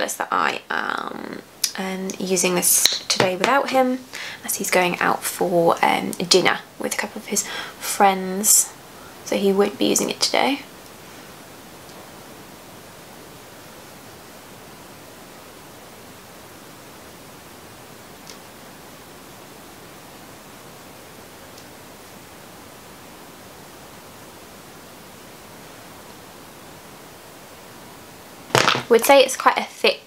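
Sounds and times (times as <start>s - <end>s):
steady background hiss: 0.0s - 30.0s.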